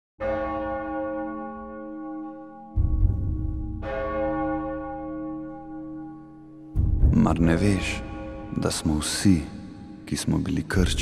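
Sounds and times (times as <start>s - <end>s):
large bell ringing: 0.2s - 10.4s.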